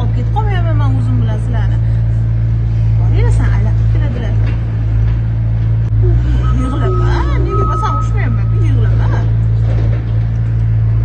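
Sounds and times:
loud low drone: 0.0 - 11.0
people's wavering voices: 5.9 - 9.5.

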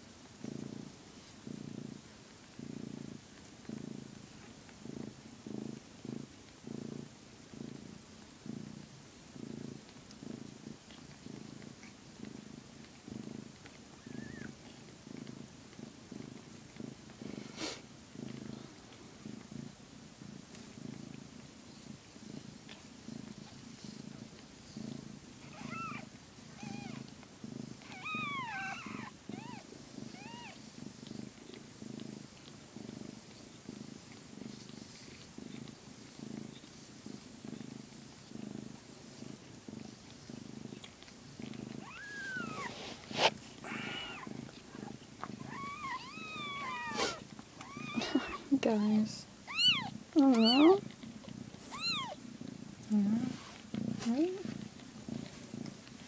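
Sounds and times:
cat purring: 0.0 - 56.0
kittens squeaking: 25.5 - 26.0, 26.6 - 27.0, 27.8 - 30.6, 41.8 - 42.8, 43.6 - 44.3, 45.4 - 48.5, 49.4 - 50.8, 51.6 - 52.2.

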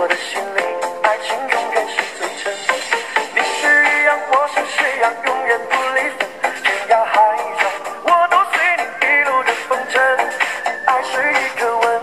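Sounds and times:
person singing lead vocal: 0.0 - 12.0
pop dance music: 0.0 - 12.0.

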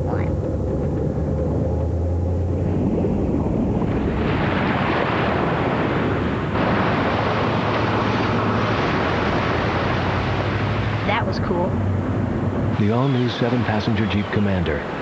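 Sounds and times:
rushing surf-like water: 2.6 - 15.0.

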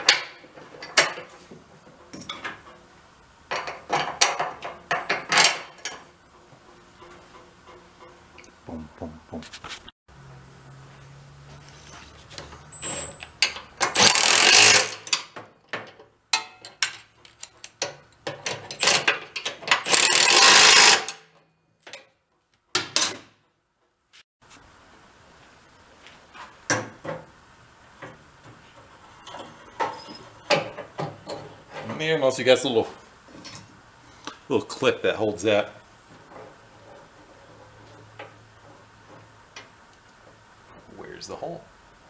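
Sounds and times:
power ratchet running: 13.9 - 15.0, 19.8 - 21.1.

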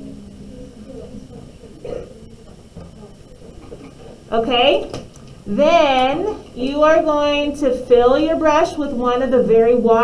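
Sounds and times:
faint background voices talking: 0.0 - 7.0.

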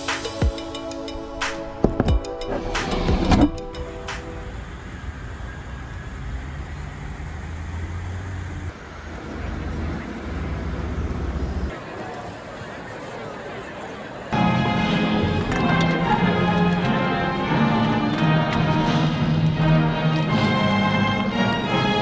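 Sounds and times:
background music: 0.0 - 4.6, 14.4 - 22.0
road traffic rushing: 1.5 - 22.0.

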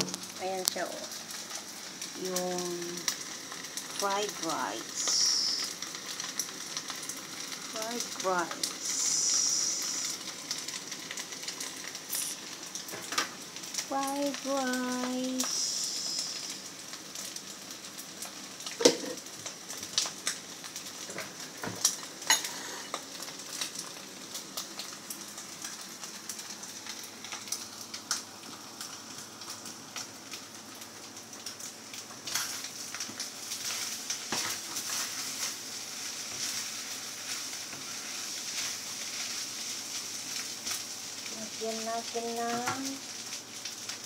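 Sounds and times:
rice sizzling in a frying pan: 0.0 - 44.0.

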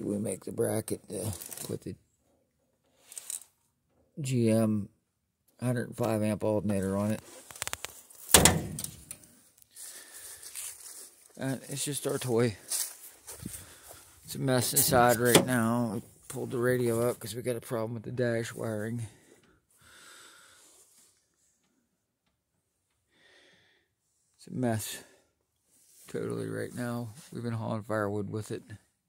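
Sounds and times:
car hood slammed shut: 8.3 - 9.0, 15.2 - 15.6
faint breaths: 9.2 - 11.3, 12.5 - 14.4, 19.0 - 21.9, 23.0 - 26.2.

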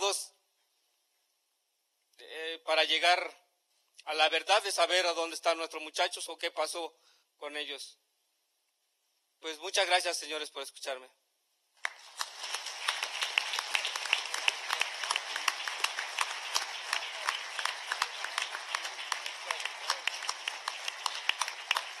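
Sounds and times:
large audience applauding: 11.8 - 22.0.

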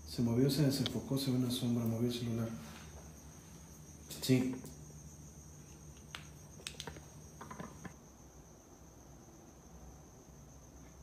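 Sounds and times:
cricket trilling: 0.0 - 11.0.

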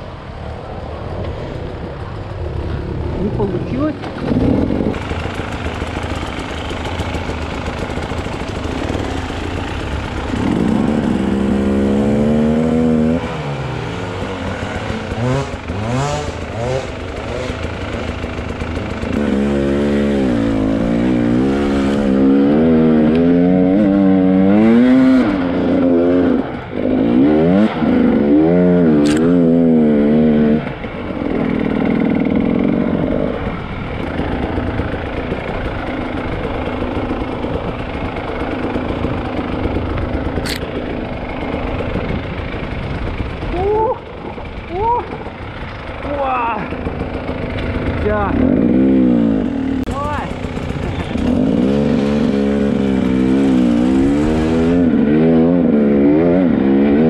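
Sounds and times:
motorcycle engine revving: 1.5 - 57.0.

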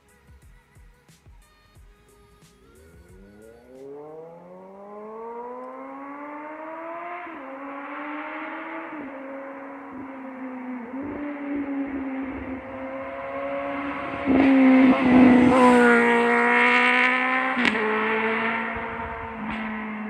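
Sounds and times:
motorcycle engine accelerating: 2.3 - 20.0.

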